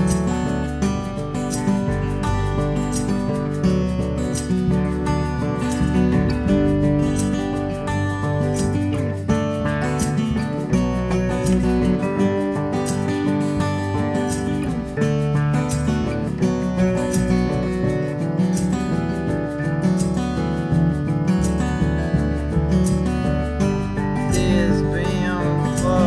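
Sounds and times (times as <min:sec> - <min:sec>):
acoustic guitars strummed: 0:00.0 - 0:26.0
plucked double bass: 0:00.0 - 0:26.0.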